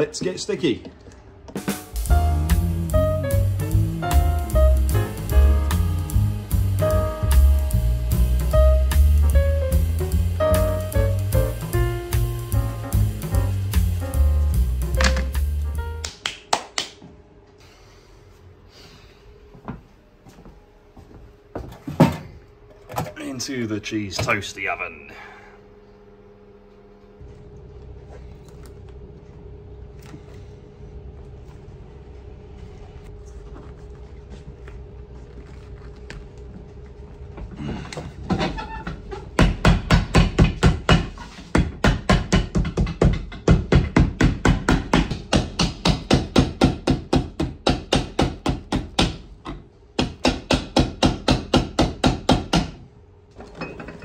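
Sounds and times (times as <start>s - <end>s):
low hum: 0.9s - 16.0s, 23.3s - 39.2s
hammer striking leather sole: 39.4s - 49.2s.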